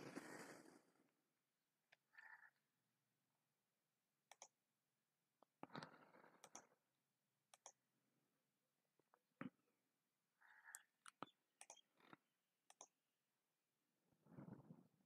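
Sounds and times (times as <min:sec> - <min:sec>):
computer mouse clicks: 0:04.3 - 0:04.6, 0:05.5 - 0:06.8, 0:07.5 - 0:07.8, 0:10.6 - 0:13.0.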